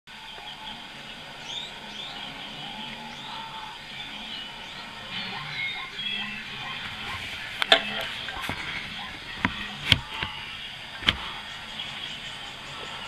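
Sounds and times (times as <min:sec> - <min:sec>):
quiet background music: 0:00.1 - 0:13.0
bird chirps: 0:00.2 - 0:13.0.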